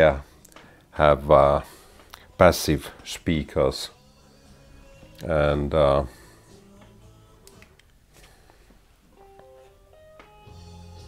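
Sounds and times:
faint music of held notes: 0.0 - 11.0.

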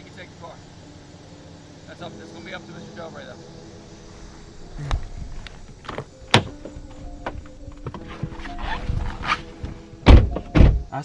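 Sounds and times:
soft background music: 0.0 - 11.0
car door shutting thumps: 4.7 - 11.0.

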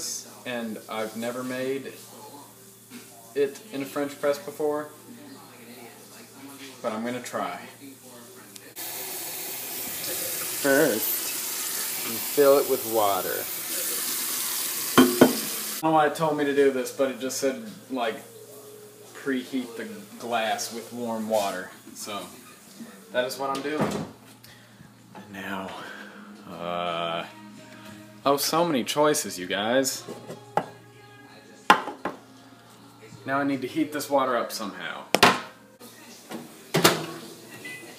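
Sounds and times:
faucet running into steel sink: 8.8 - 15.8
mug clinking: 14.9 - 15.6
mug knocking on countertop: 15.0 - 15.6, 30.1 - 30.8, 31.7 - 32.2, 35.2 - 35.5.

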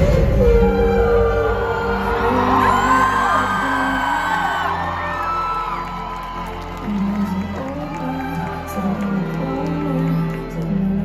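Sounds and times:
live band playing held chords: 0.0 - 10.3
audience whooping and cheering: 0.0 - 11.0.

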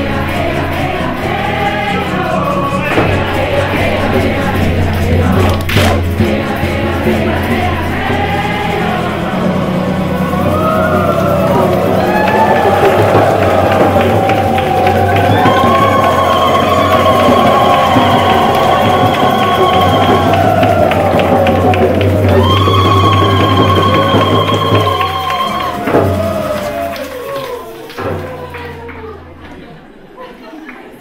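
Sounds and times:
group singing in unison: 0.0 - 28.2
guitar accompaniment: 0.0 - 29.6.

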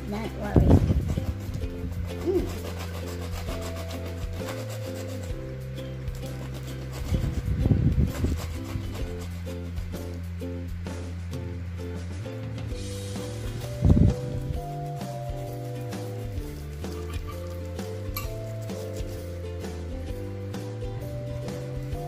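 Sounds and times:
background music: 0.0 - 22.0
cheese scraping on hand grater: 0.2 - 9.9, 15.3 - 19.3.

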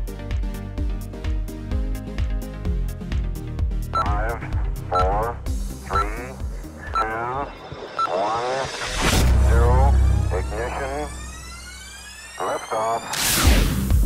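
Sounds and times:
processed voice counting down: 3.9 - 11.4, 12.3 - 13.2.

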